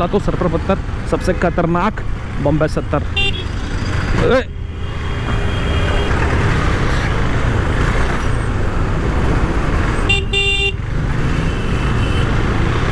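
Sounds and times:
vehicle horn honk: 3.2 - 3.5, 10.1 - 10.8.

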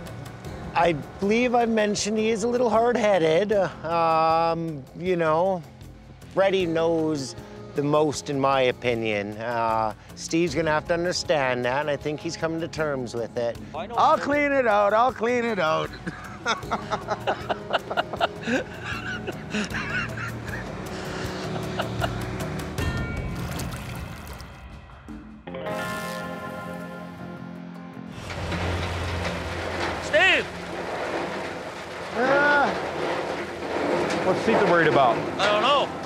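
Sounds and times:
music with sustained chords: 11.4 - 30.3
men laughing: 15.9 - 22.6
trommel rumbling: 28.1 - 36.0.

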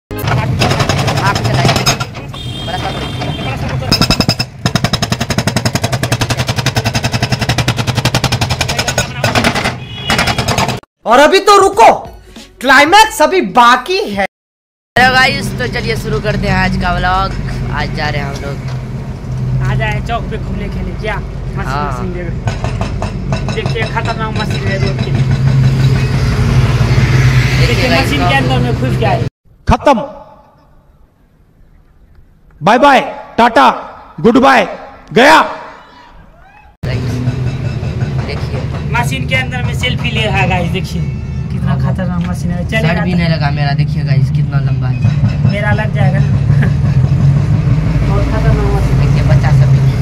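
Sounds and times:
hydraulic breaker pounding concrete: 0.3 - 2.4, 3.1 - 10.8
diesel engine running: 36.9 - 50.0.

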